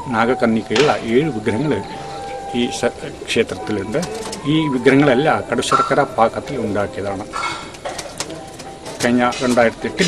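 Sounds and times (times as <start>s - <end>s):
low-pitched bird calling: 0.0s - 6.4s
man speaking: 0.0s - 7.4s, 9.0s - 10.0s.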